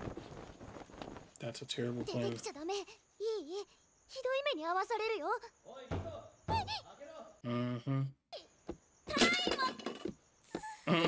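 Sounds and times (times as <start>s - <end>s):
girl speaking in high voice: 2.1s - 5.6s, 6.5s - 6.9s, 9.1s - 9.8s.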